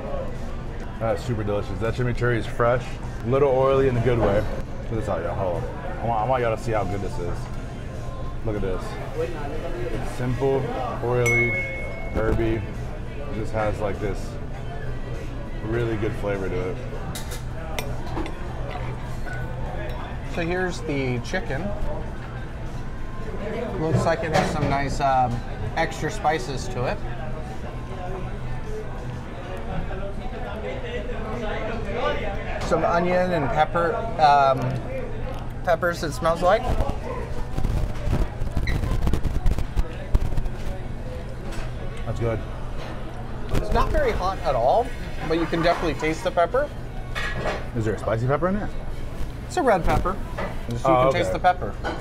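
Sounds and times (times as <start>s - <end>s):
background chatter: 0.0s - 52.0s
low background hum: 0.0s - 52.0s
high clink: 11.2s - 12.3s.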